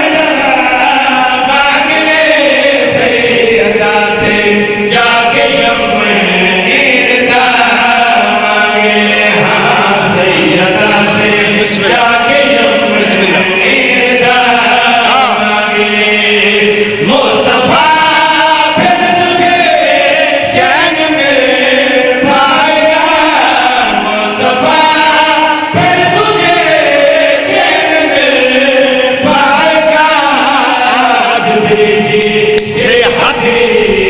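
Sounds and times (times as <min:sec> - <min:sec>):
men chanting into microphones: 0:00.0 - 0:34.0.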